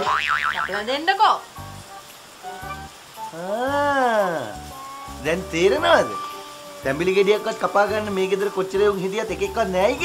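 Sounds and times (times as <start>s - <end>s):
comic boing sound effect: 0.0s - 0.8s
background music: 1.6s - 10.0s.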